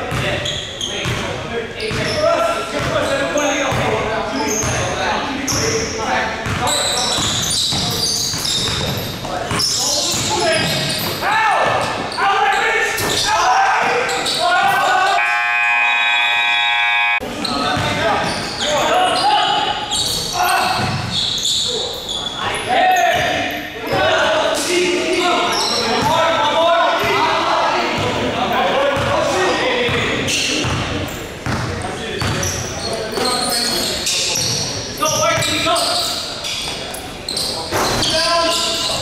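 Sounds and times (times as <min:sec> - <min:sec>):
players' voices echoing: 0:00.0 - 0:39.0
basketball bouncing on court: 0:00.1 - 0:00.3, 0:06.4 - 0:11.8, 0:20.6 - 0:21.2, 0:29.9 - 0:32.6
scoreboard buzzer: 0:15.2 - 0:17.2.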